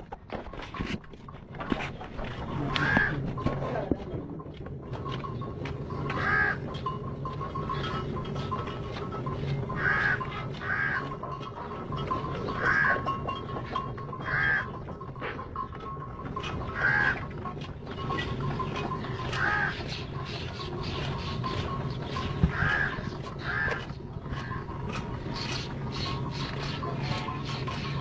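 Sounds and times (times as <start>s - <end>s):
harsh squawks: 2.5s - 3.2s.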